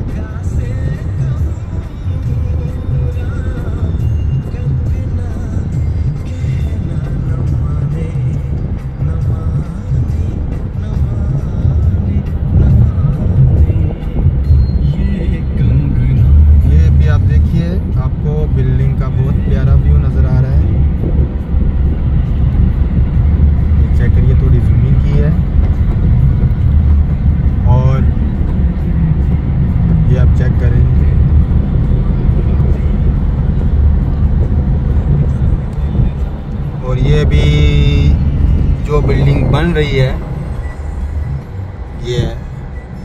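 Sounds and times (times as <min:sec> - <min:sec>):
car driving rumble from inside: 0:00.0 - 0:43.0.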